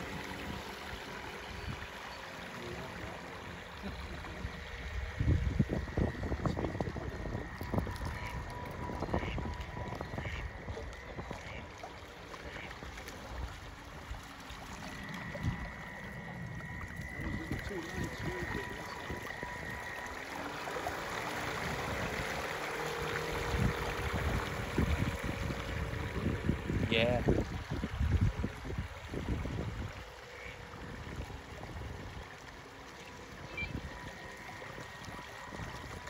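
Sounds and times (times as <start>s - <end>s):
model boat motor whine: 0.0s - 36.0s
wind buffeting microphone: 4.0s - 11.7s, 15.0s - 32.4s.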